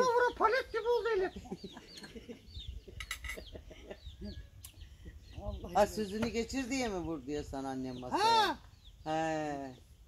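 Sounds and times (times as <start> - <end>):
chickens clucking: 1.2 - 6.4.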